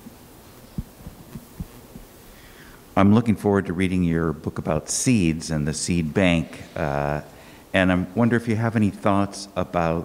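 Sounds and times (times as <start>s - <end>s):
microphone handling thumps: 0.0s - 2.2s.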